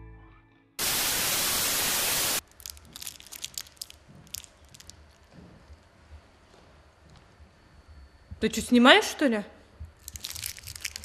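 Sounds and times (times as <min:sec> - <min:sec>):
white-noise static burst: 0:00.8 - 0:02.4
wrapper crinkling: 0:02.4 - 0:05.2, 0:10.0 - 0:11.0.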